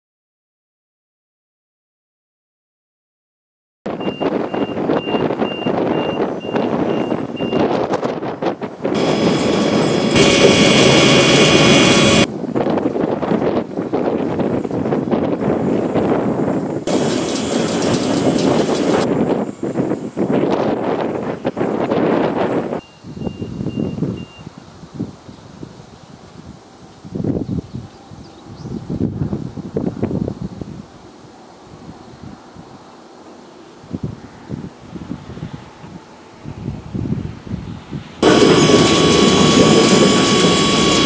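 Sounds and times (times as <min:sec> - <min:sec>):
loud high whine: 0:08.6 - 0:12.3, 0:16.6 - 0:20.8, 0:38.2 - 0:41.0
truck engine running: 0:08.9 - 0:12.3, 0:16.9 - 0:19.1, 0:38.2 - 0:41.0
faint high beeping: 0:38.2 - 0:41.0.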